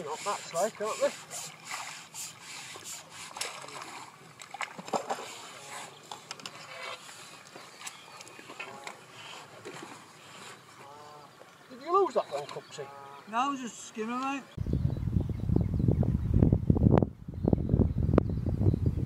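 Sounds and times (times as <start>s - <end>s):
water splashing and sloshing: 0.0s - 14.6s.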